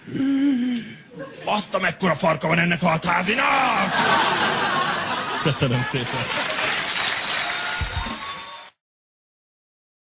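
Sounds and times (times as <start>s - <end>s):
audience laughing: 3.6s - 7.2s
audience applauding: 4.2s - 8.8s.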